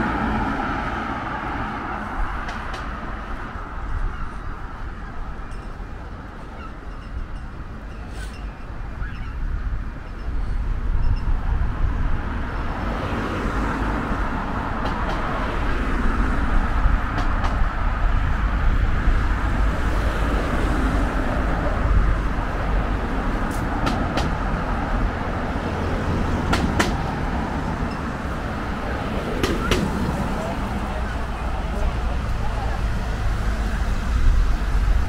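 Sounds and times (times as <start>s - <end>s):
cars passing: 0.0s - 35.0s
rumble of engines and tyres: 0.0s - 35.0s.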